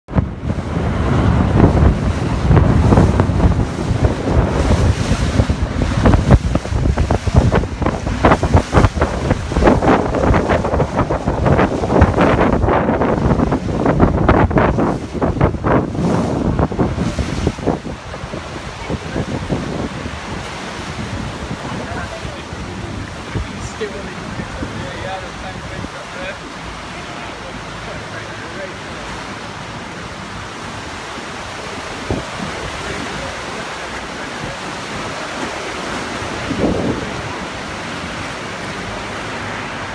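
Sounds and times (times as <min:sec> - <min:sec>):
wind buffeting microphone: 0:00.1 - 0:26.9, 0:28.7 - 0:39.9
sea water rushing: 0:00.1 - 0:39.9.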